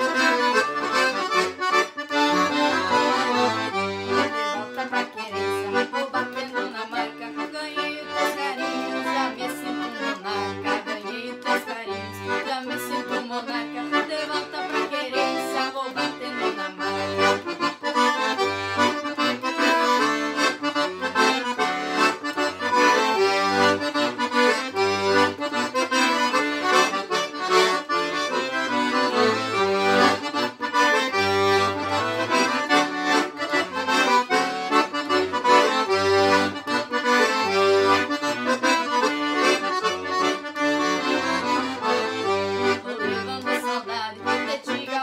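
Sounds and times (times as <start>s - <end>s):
accordion duet: 0.0s - 45.0s.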